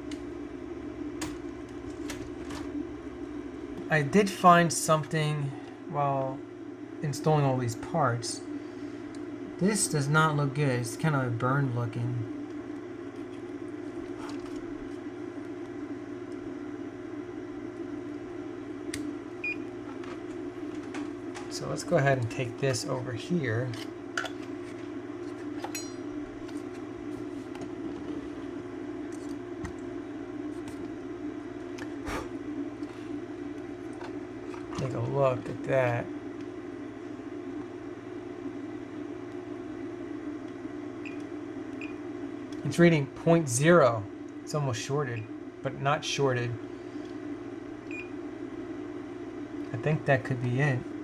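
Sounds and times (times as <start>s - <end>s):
steady low hum: 0.0s - 51.0s
multimeter beep: 19.4s - 19.7s.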